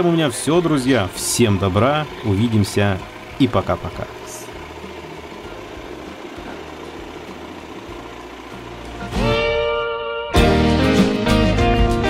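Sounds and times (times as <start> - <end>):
electric mop motor hum: 0.4 - 10.1.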